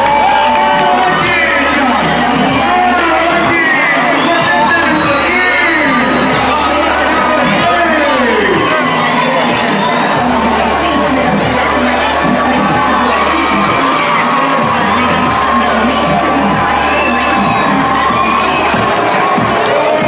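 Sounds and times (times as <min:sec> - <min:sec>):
crowd cheering and screaming: 0:00.0 - 0:20.0
music with bass line: 0:00.0 - 0:20.0.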